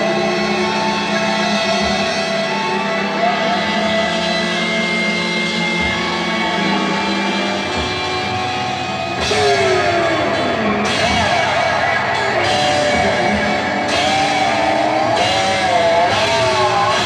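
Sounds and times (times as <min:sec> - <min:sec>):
live rock band droning: 0:00.0 - 0:17.0.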